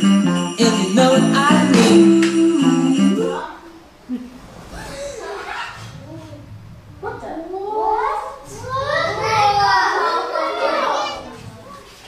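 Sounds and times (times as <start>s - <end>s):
children talking and calling out: 4.7s - 12.0s.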